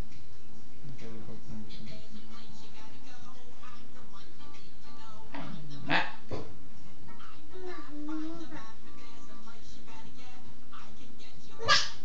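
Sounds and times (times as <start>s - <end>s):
dog barking: 11.6s - 12.0s.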